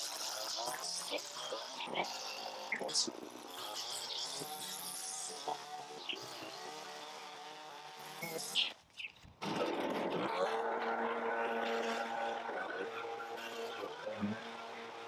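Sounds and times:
leaf blower running: 0:00.0 - 0:08.8, 0:09.4 - 0:15.0
string trimmer engine running: 0:00.0 - 0:15.0.

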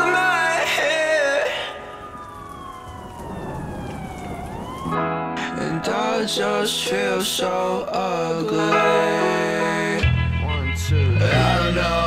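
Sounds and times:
siren wailing: 0:01.5 - 0:05.2.

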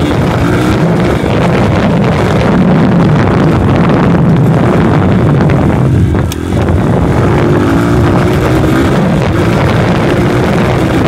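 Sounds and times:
dirt bike engine running: 0:00.0 - 0:11.0.

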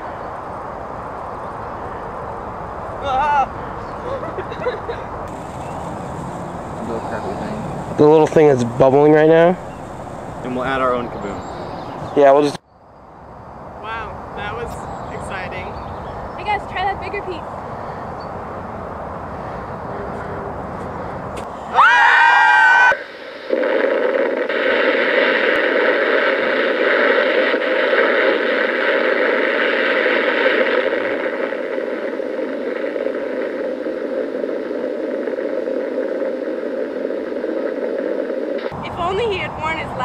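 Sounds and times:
explosion roar through small speakers: 0:05.3 - 0:12.6, 0:21.4 - 0:39.8
person screaming: 0:21.6 - 0:23.0.

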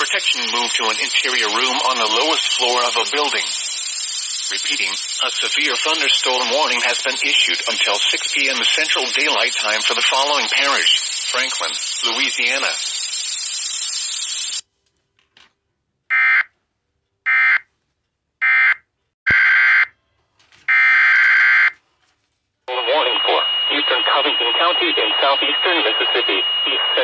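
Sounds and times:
person reading a warning: 0:00.0 - 0:03.8, 0:04.4 - 0:13.0, 0:20.3 - 0:27.0.

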